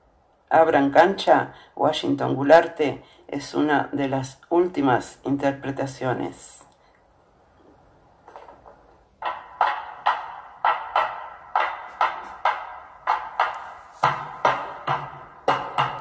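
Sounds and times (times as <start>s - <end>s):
drum strikes: 9.2s - 16.0s.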